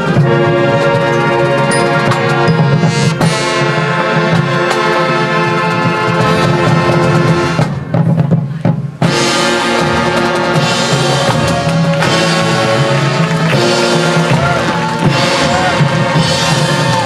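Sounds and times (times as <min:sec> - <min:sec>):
marching band playing: 0:00.0 - 0:17.0.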